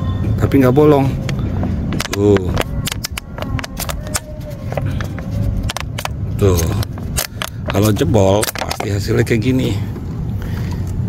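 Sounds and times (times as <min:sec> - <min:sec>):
plastic water bottle crackling: 0:01.9 - 0:09.4.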